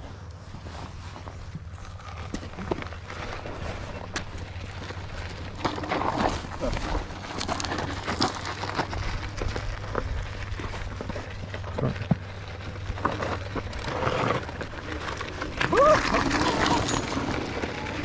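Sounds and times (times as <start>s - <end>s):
tyres crunching over gravel: 0.1s - 18.0s.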